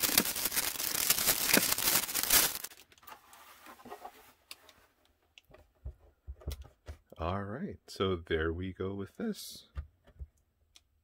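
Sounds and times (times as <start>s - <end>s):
plastic wrapping crinkling and tearing: 0.0s - 3.0s.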